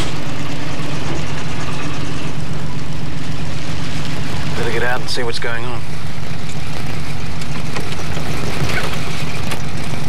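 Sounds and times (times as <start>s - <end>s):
car engine hum inside cabin: 0.0s - 10.0s.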